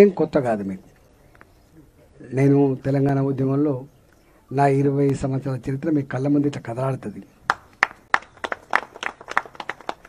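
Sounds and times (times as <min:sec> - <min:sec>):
people clapping: 0:07.5 - 0:10.0.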